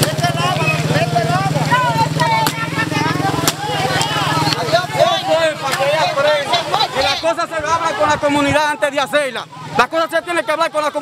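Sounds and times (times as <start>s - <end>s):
motorcycle engine idling: 0.0s - 8.0s
people talking: 0.0s - 11.0s.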